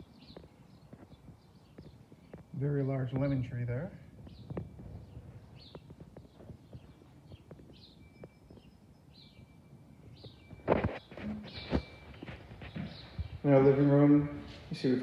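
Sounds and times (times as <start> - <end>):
bird chirps: 0.0 - 15.0.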